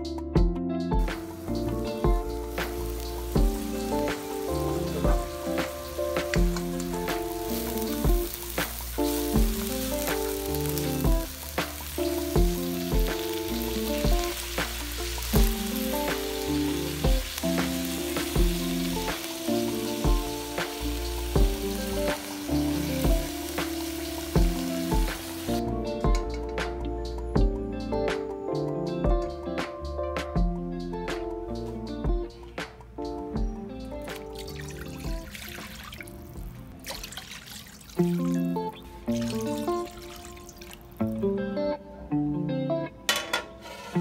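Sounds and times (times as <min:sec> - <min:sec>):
background music with steady beat: 0:00.0 - 0:37.4
food sizzling in a hot pan: 0:01.1 - 0:25.6, 0:34.1 - 0:41.1
spatula stirring: 0:43.6 - 0:44.0.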